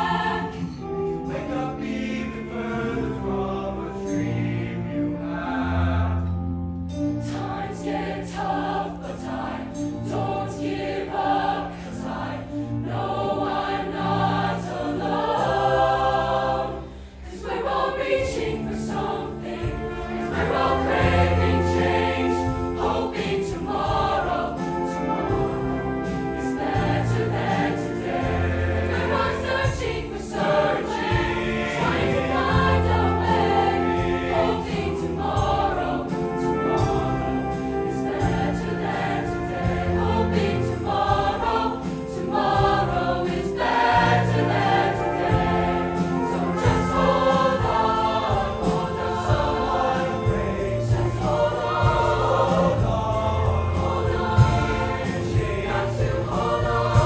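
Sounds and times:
mixed choir singing: 0:00.0 - 0:57.0.

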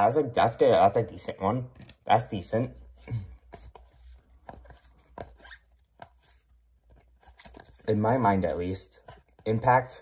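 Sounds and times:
trading cards clicking and rustling: 0:01.7 - 0:02.4, 0:03.0 - 0:10.0.

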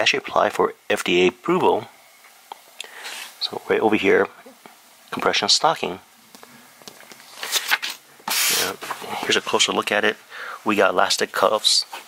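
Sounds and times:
paper sheet rustling: 0:07.2 - 0:09.6.

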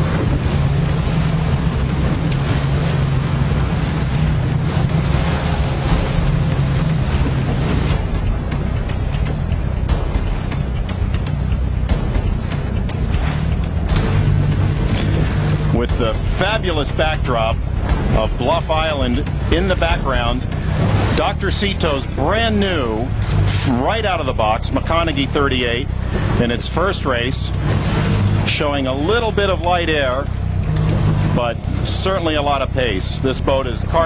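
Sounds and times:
steady low drone: 0:00.0 - 0:34.0
wind and choppy water hiss: 0:00.0 - 0:34.0.

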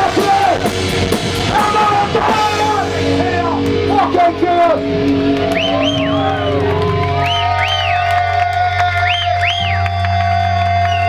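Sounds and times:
guitar amp feedback tone: 0:00.0 - 0:08.1
low amp hum: 0:00.7 - 0:08.1
crowd cheering: 0:03.9 - 0:11.0
high feedback squeals: 0:05.5 - 0:06.6.

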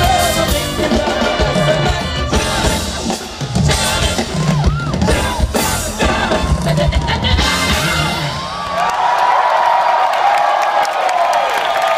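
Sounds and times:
live band playing: 0:00.0 - 0:08.8
crowd cheering and whooping: 0:04.0 - 0:11.9.

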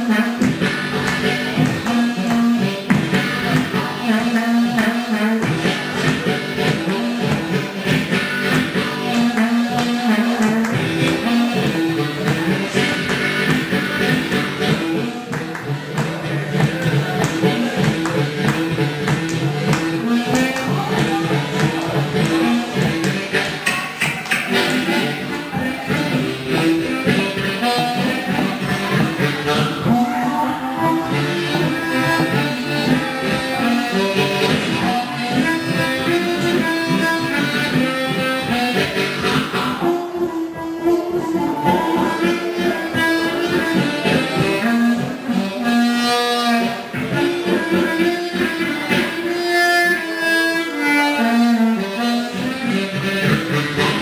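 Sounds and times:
amplified blues harmonica solo: 0:00.0 - 0:54.0
live blues band: 0:00.0 - 0:54.0.

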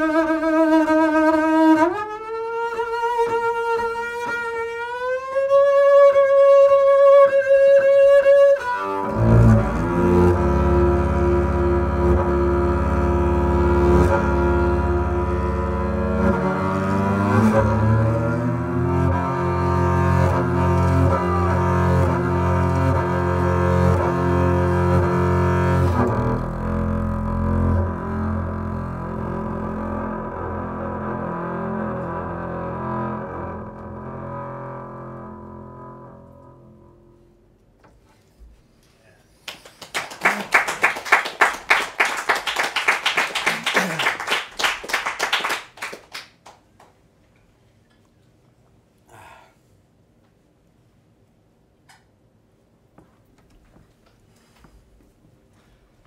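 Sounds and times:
bowed double bass: 0:00.0 - 0:38.0.

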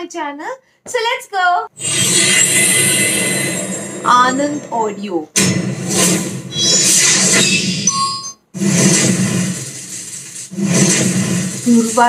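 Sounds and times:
loud rushing sound effect: 0:08.6 - 0:12.0.

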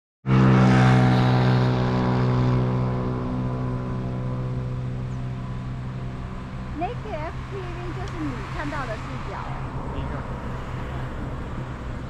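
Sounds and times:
low engine hum with rumble: 0:00.3 - 0:12.0.

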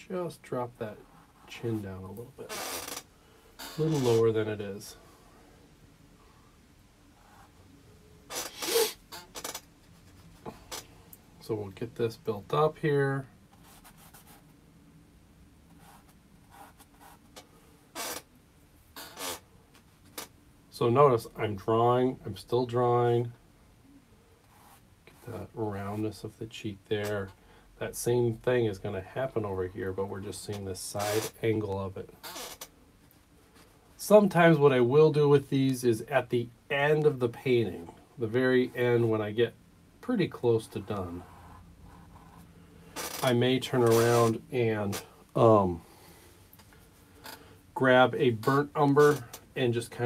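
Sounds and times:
person speaking: 0:00.0 - 0:02.6, 0:03.8 - 0:05.0, 0:25.2 - 0:32.2, 0:34.0 - 0:42.4, 0:43.2 - 0:46.0, 0:47.7 - 0:50.0.

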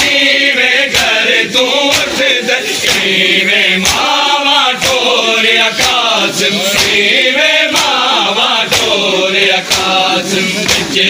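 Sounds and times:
men chanting a lament: 0:00.0 - 0:11.0
hands slapping on chests: 0:00.8 - 0:03.2, 0:03.8 - 0:05.2, 0:05.8 - 0:06.1, 0:06.7 - 0:08.1, 0:08.7 - 0:09.0, 0:09.6 - 0:11.0.

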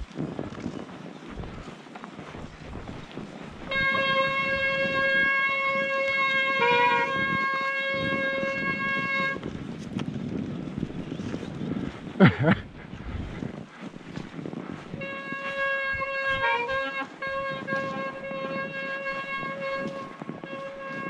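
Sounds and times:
tyre and wind rumble: 0:00.0 - 0:21.0.

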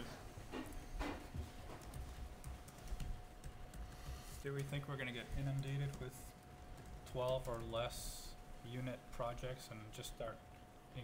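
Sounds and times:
laptop keyboard typing: 0:00.7 - 0:08.2.

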